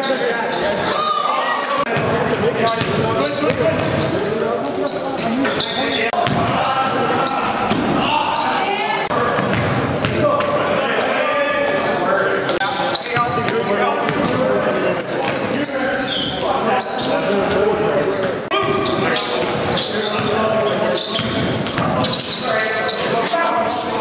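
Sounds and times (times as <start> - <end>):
basketball bouncing on gym floor: 1.9 - 4.0, 6.2 - 6.5, 9.2 - 10.2.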